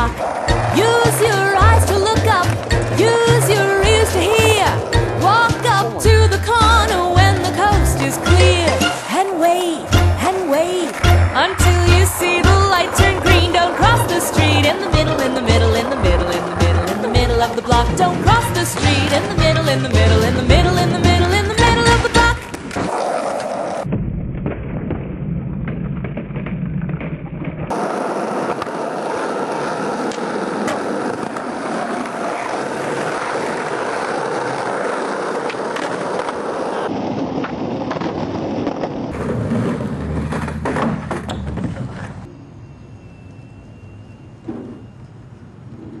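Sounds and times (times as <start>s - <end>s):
skateboard wheels rolling: 0.0s - 23.9s, 25.7s - 43.1s
skateboard clacks and slaps: 26.4s - 42.3s.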